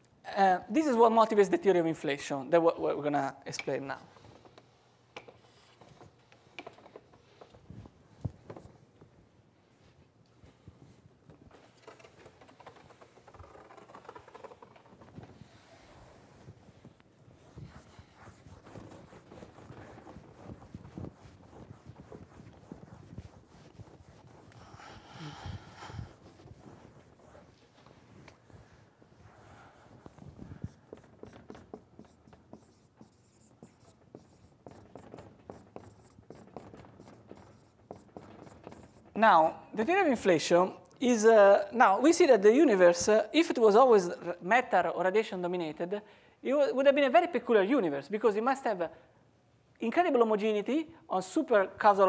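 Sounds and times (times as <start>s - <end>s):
marker squeaking on whiteboard: 11.8s - 16.2s, 30.1s - 39.2s.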